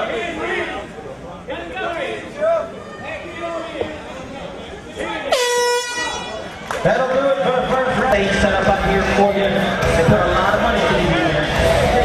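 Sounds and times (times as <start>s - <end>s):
air horn blast: 5.3s - 6.4s.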